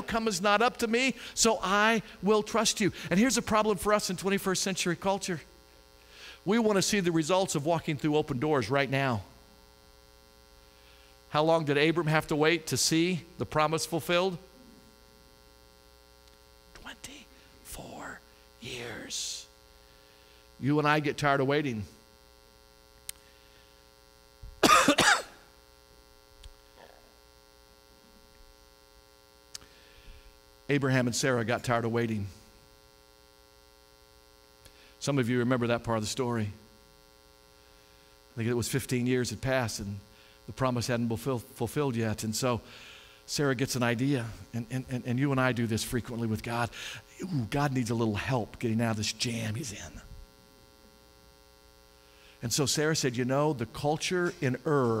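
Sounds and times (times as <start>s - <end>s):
faint electrical mains hum: 0.0s - 55.0s
man coughing: 24.6s - 25.5s.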